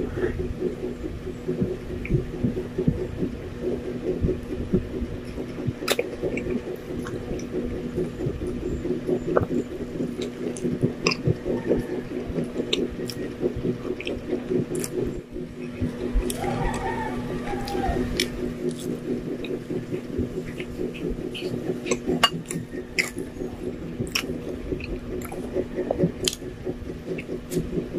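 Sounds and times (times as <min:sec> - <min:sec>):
steady low droning tone: 0:00.0 - 0:27.9
chewing bread sandwich: 0:00.2 - 0:27.9.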